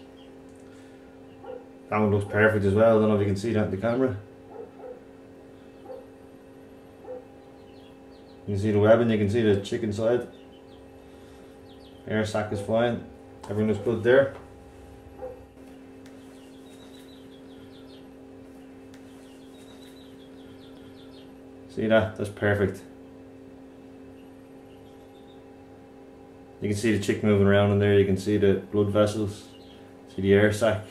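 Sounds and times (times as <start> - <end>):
faint electrical hum: 0.0 - 30.9.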